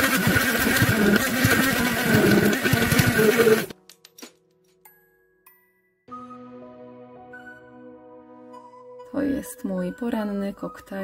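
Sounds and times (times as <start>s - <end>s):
immersion blender motor whine: 0.0s - 3.8s.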